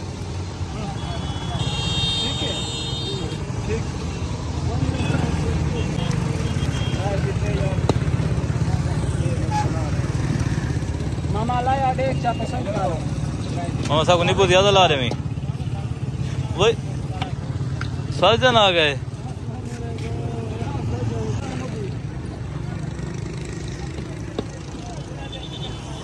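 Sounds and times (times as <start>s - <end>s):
low rumble of motor traffic: 0.0s - 26.0s
voices talking: 0.0s - 26.0s
vehicle horn: 0.9s - 3.4s, 4.9s - 7.2s.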